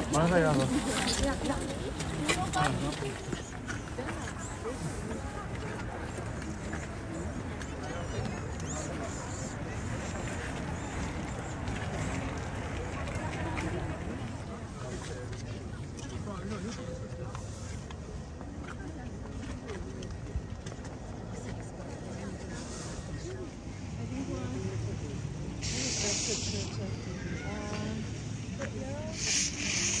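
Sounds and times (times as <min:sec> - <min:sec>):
distant people chattering: 0:00.0 - 0:30.0
short hisses: 0:25.6 - 0:26.8, 0:29.2 - 0:30.0.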